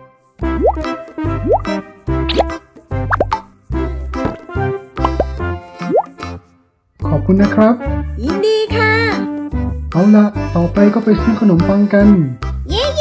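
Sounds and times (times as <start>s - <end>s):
playful children's music: 0.0s - 13.0s
rising bloop plop: 0.6s - 0.8s, 1.4s - 1.7s, 2.3s - 3.4s, 5.9s - 6.1s.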